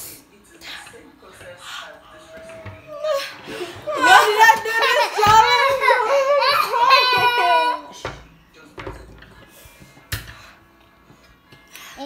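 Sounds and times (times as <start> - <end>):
woman wailing and laughing: 3.9 - 7.9.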